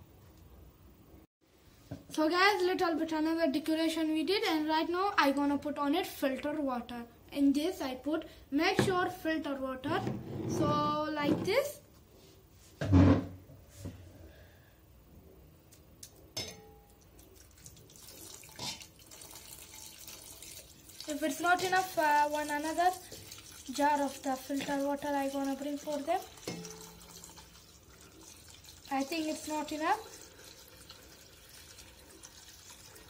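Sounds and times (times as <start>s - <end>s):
water pouring into a tank: 17.1s - 33.0s.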